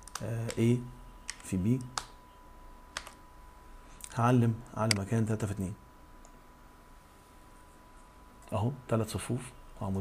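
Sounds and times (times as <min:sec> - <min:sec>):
computer keyboard clicks: 0:00.0 - 0:00.6, 0:01.3 - 0:02.2, 0:03.0 - 0:03.2.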